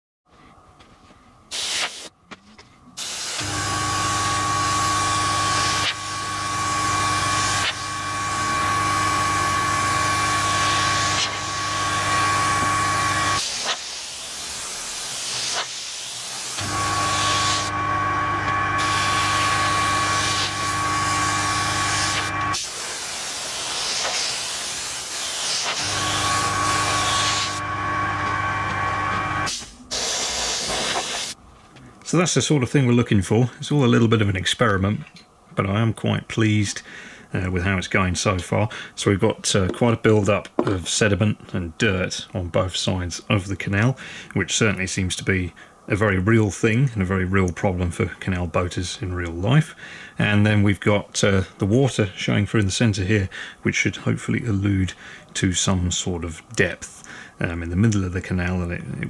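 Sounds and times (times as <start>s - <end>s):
airbrush hissing: 1.5s - 2.1s, 3.0s - 4.2s, 4.8s - 12.4s, 13.2s - 17.7s, 18.8s - 27.6s, 29.5s - 31.4s
compressor motor humming: 3.0s - 31.4s.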